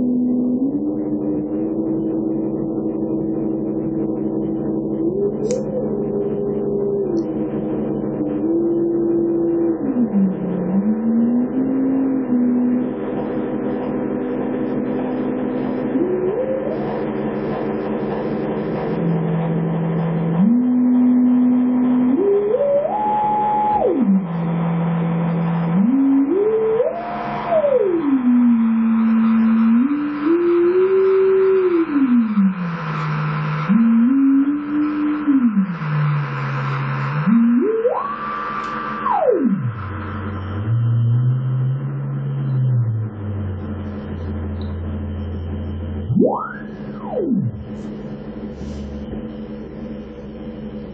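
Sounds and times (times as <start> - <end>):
low electronic drone: 0.0 - 50.9
sliding electronic tone: 0.0 - 50.9.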